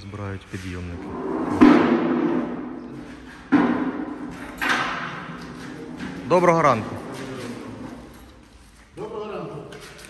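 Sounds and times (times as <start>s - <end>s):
loud metallic bangs: 1.1s - 7.8s.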